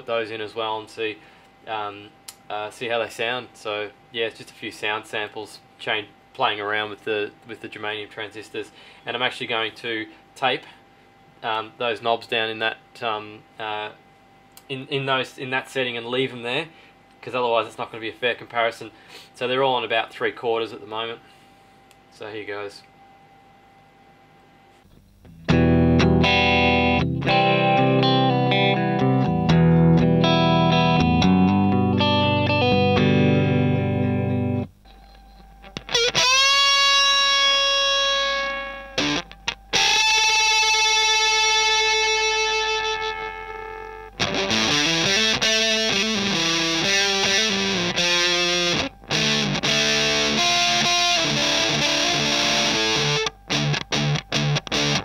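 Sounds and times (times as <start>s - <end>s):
fuzz electric guitar: 25.2s - 55.0s.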